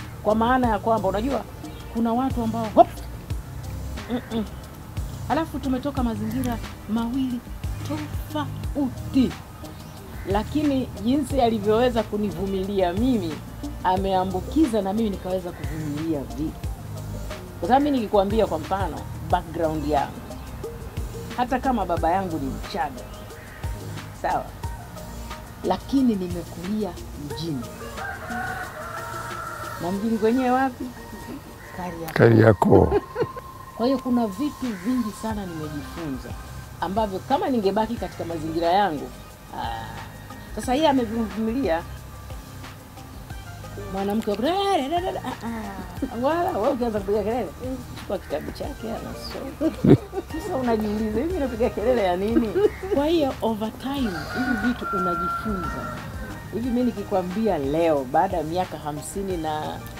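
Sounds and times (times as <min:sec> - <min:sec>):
voices: 0:00.0 - 0:59.9
rooster crowing: 0:27.8 - 0:33.8, 0:53.9 - 0:56.9.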